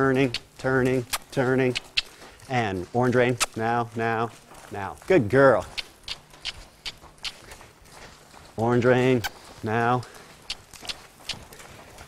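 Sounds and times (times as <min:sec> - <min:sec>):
horse hooves trotting on dirt: 0:00.0 - 0:12.0.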